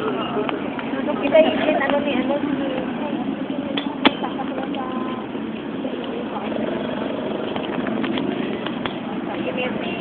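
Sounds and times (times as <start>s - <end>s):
faint voices: 0.0s - 10.0s
traffic noise: 0.0s - 10.0s.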